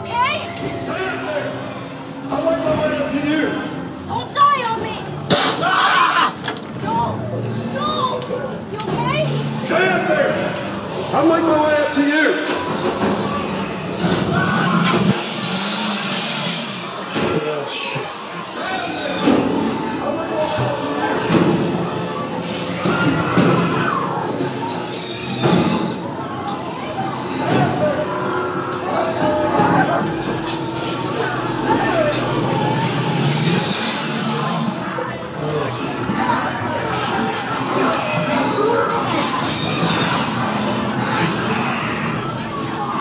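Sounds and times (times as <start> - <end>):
voices: 0.0 - 43.0
loud steady rumble: 27.4 - 36.1
low hum: 27.8 - 36.0.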